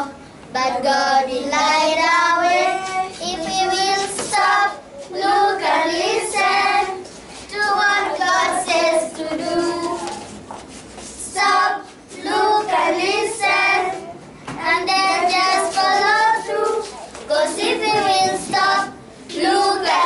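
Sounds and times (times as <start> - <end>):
children singing: 0.8 - 10.3, 11.3 - 20.0.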